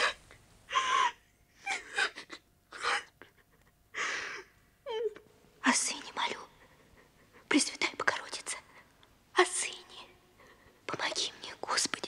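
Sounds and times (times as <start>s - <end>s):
woman whispering: 5.6s - 6.8s, 7.4s - 12.0s.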